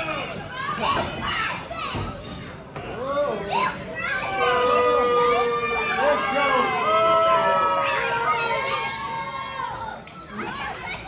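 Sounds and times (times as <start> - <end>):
crowd shouting: 4.0 - 10.6.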